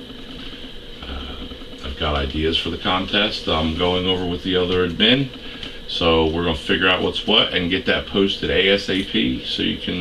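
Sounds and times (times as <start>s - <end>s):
constant high hiss: 0.0s - 10.0s
low hum: 0.0s - 10.0s.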